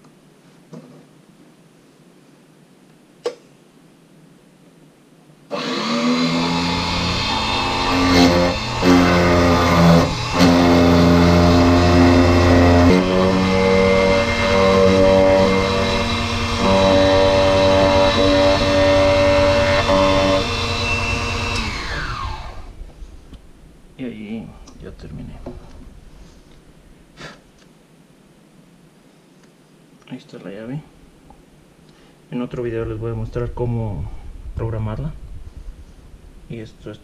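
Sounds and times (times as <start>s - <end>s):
key cutting machine whine: 5.5s - 22.7s.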